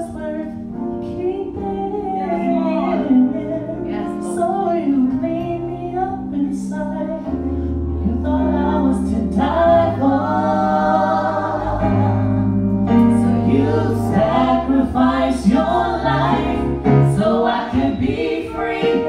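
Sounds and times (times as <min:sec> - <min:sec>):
keyboard bass notes: 0:00.0 - 0:19.0
gospel group singing: 0:08.0 - 0:19.0.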